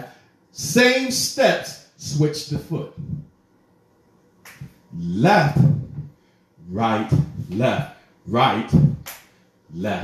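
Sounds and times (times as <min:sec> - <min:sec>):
man speaking: 0:00.0 - 0:03.2, 0:04.9 - 0:09.1, 0:09.7 - 0:10.0.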